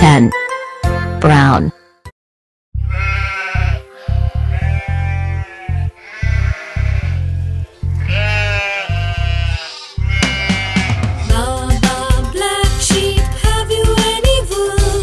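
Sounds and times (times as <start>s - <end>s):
sheep bleating: 2.8s - 11.3s
music with heavy bass line: 10.0s - 15.0s.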